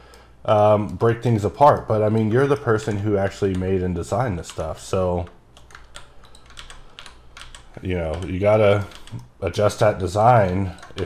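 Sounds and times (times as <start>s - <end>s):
keyboard key clicks: 5.5s - 9.3s.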